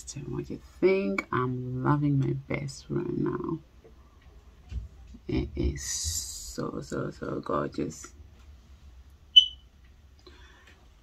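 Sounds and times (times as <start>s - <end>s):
short high-pitched chirp: 9.4s - 9.7s.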